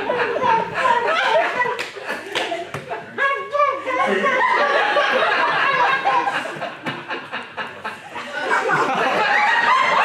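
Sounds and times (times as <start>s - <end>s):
sharp claps: 1.8s - 2.9s
audience chuckling laughter: 4.0s - 10.0s.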